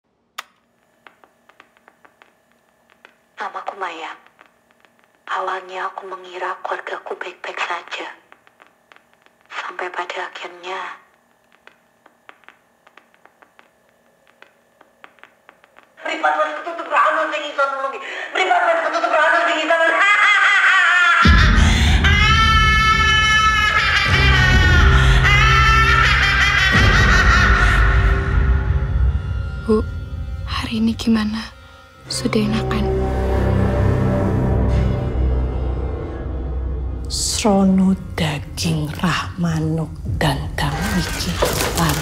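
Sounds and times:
low steady hum: 0:00.1 - 0:20.5, 0:21.3 - 0:42.0
faint irregular ticks: 0:08.2 - 0:16.0.

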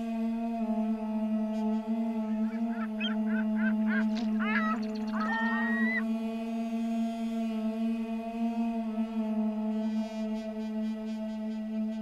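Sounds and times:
ambient music drone: 0:00.0 - 0:12.0
bird calls: 0:02.2 - 0:06.0.

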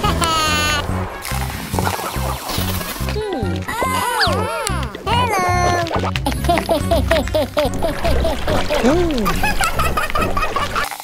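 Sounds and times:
upbeat background music: 0:00.0 - 0:11.0
cartoonish squeaky voice: 0:03.7 - 0:06.0.

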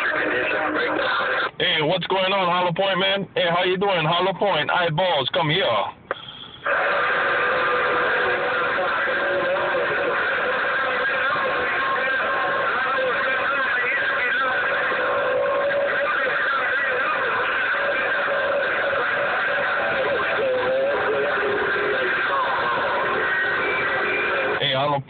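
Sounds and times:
garbled radio voices: 0:00.0 - 0:25.0
radio static: 0:00.0 - 0:25.0
whistling carrier tones: 0:06.1 - 0:06.7.

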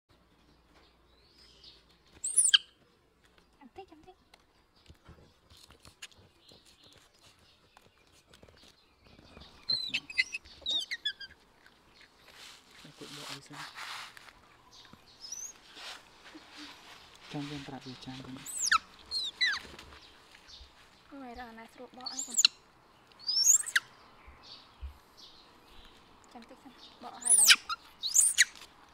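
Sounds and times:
baby monkey squealing: 0:02.2 - 0:02.6, 0:09.7 - 0:11.3, 0:18.4 - 0:19.7, 0:22.1 - 0:22.6, 0:23.2 - 0:23.8, 0:27.2 - 0:28.6.

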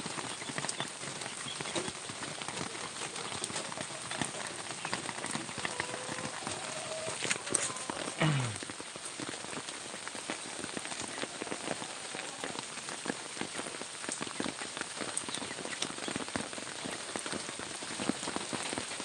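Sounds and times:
rain falling on wet ground: 0:00.0 - 0:19.0
raindrops ticking: 0:00.0 - 0:19.0.

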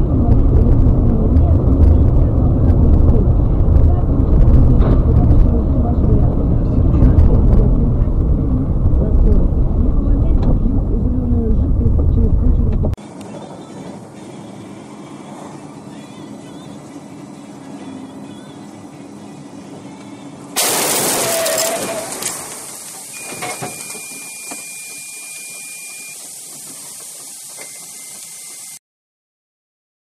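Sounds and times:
car driving on wet road: 0:00.0 - 0:28.8
in-car road hiss: 0:13.0 - 0:28.8.

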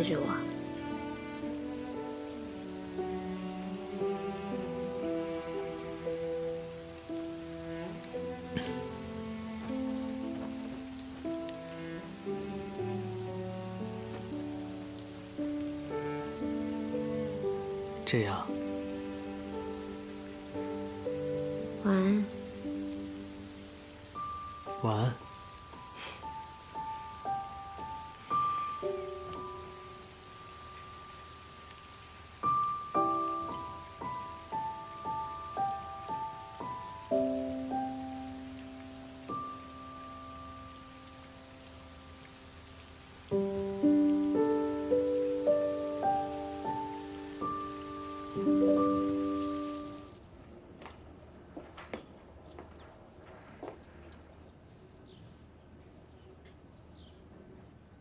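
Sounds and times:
soft background music chords: 0:00.0 - 0:50.2
steady rain: 0:00.0 - 0:51.9.

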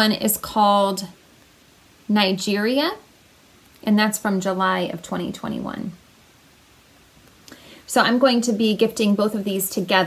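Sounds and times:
woman speaking: 0:00.0 - 0:01.2, 0:02.1 - 0:03.1, 0:03.8 - 0:06.0, 0:07.9 - 0:10.0
soft breath: 0:07.4 - 0:07.9.

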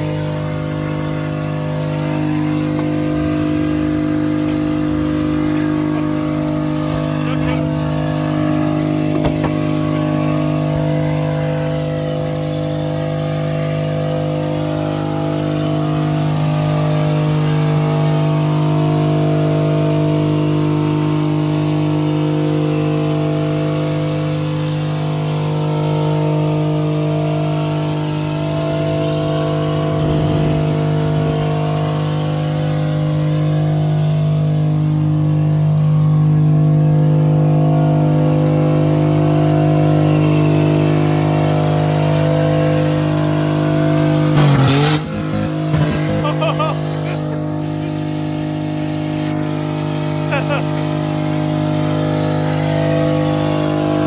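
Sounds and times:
car engine at high revs: 0:00.0 - 0:54.0.

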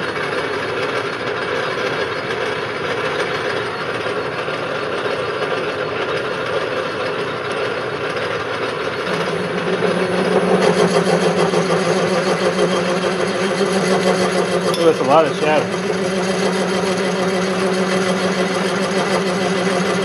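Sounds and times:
metal lathe cutting with chatter: 0:00.2 - 0:20.0.

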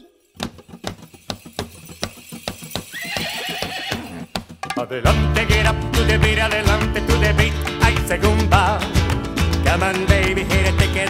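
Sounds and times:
rumba music: 0:00.0 - 0:11.0
sharp clip-clop knocks: 0:00.4 - 0:04.8.

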